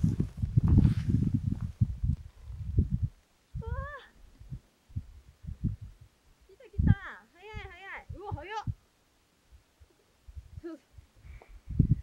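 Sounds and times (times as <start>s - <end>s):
wind buffeting microphone: 0.0s - 8.9s, 9.5s - 12.0s.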